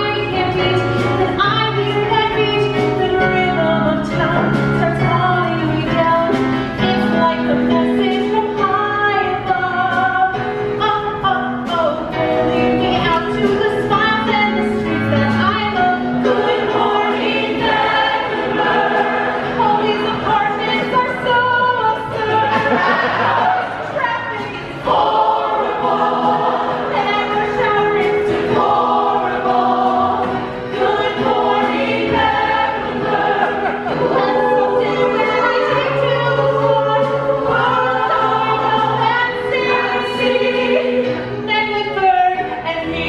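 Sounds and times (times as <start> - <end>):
mixed chorus singing show tune: 0.0 - 11.4, 12.1 - 43.0.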